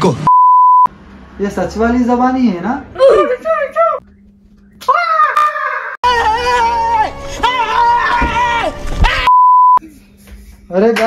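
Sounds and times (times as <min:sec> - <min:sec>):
steady electronic beep: 0:00.3 - 0:00.9, 0:09.3 - 0:09.8.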